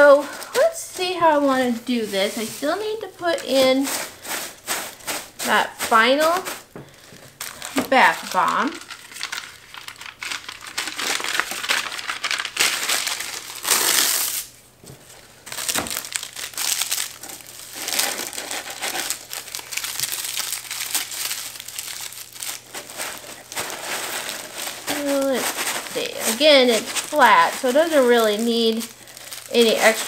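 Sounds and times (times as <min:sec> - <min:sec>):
paper rustling and crinkling: 0:00.2 - 0:30.0.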